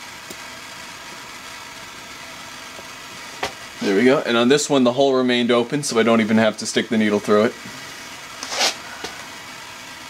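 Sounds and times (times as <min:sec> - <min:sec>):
propane torch hissing: 0:00.0 - 0:10.0.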